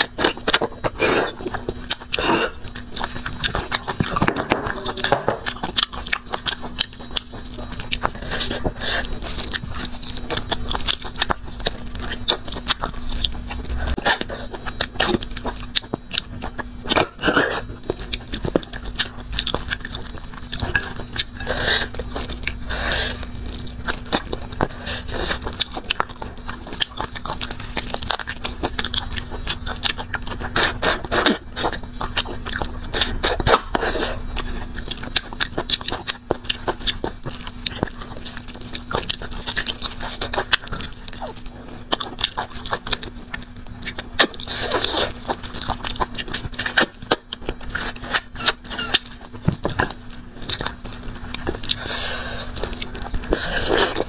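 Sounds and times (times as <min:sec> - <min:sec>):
faint hum: 0:00.0 - 0:54.0
person chewing bones: 0:00.0 - 0:54.0.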